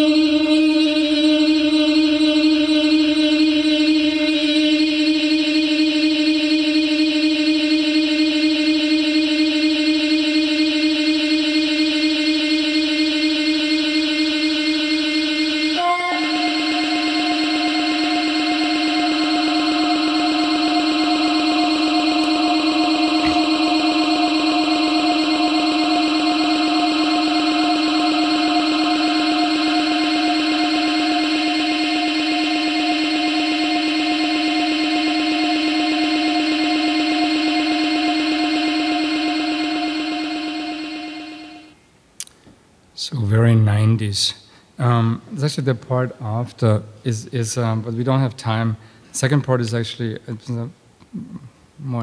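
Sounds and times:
electronic drone: 0.0 - 41.8.

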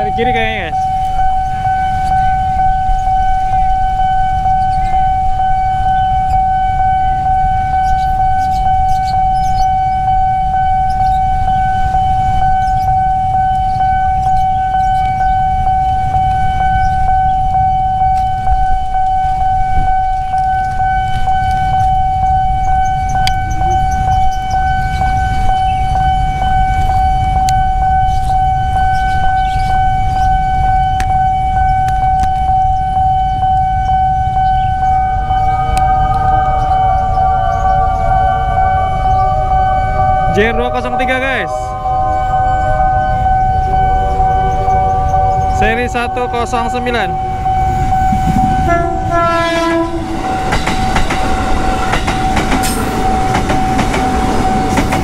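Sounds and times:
level crossing alarm tone: 0.0 - 55.0
low rumble: 33.9 - 46.5.

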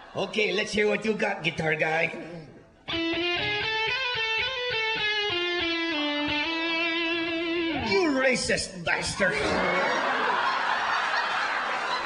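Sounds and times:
electric guitar melody: 2.8 - 8.0.

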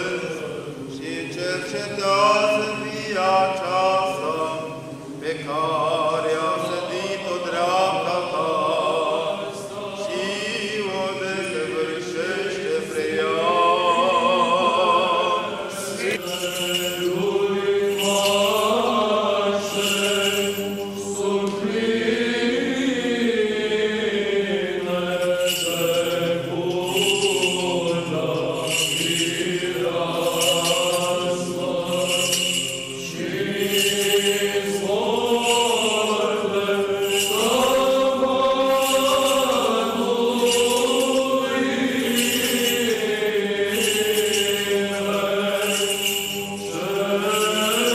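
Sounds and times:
choir chanting: 0.0 - 47.9.

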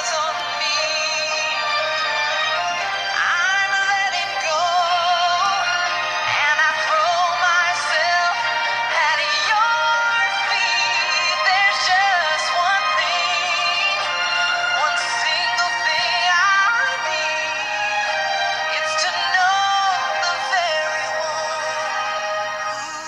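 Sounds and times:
person singing with vibrato: 0.0 - 23.0
steady musical accompaniment: 0.0 - 23.0.

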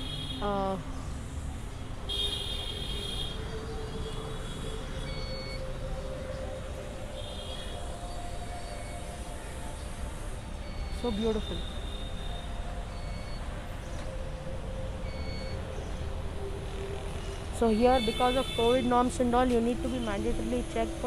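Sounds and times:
distant traffic: 0.0 - 21.0
wind: 0.0 - 21.0.

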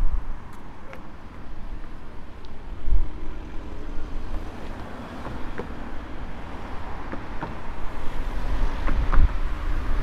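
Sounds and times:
road traffic rumble: 0.0 - 10.0
wind on microphone: 2.5 - 4.4, 7.6 - 10.0.

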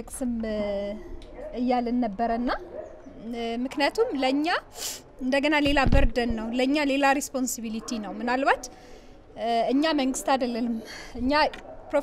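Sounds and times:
woman talking into a microphone: 0.0 - 8.7, 9.4 - 12.0.

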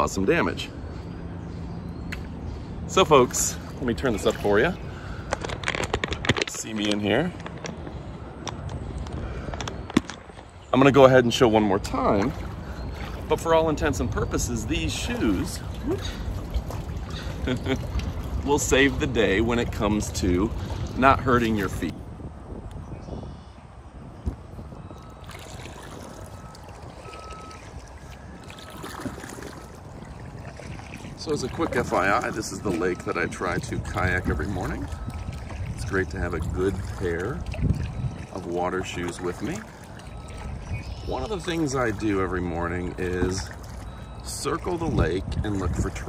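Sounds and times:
water lapping against hull: 0.0 - 22.0, 24.5 - 46.0
wind rumbling on microphone: 0.0 - 46.0.

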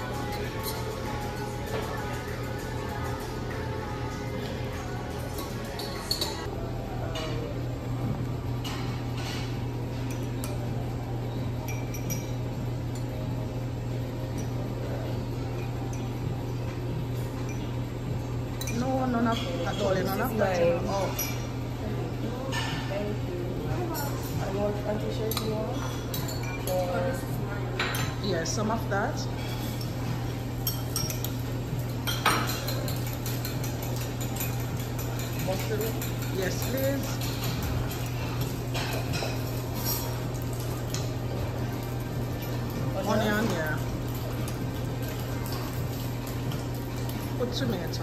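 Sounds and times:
metal spoons clinking on bowls: 0.0 - 3.9, 4.7 - 6.5, 8.6 - 13.3, 14.2 - 17.8, 18.5 - 21.7, 22.4 - 48.0.

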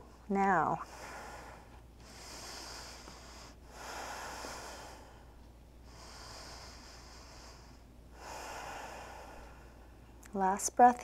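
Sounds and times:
person breathing slowly: 0.8 - 10.1.

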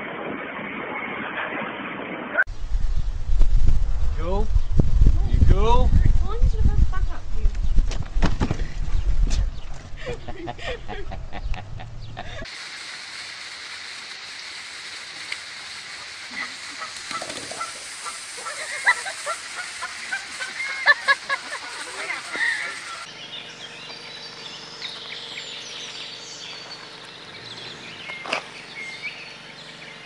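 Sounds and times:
outdoor background: 0.0 - 30.0
goose honking: 16.3 - 23.1.

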